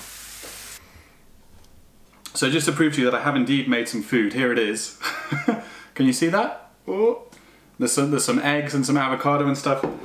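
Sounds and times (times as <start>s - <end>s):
eggs sizzling in a frying pan: 0.0s - 0.8s.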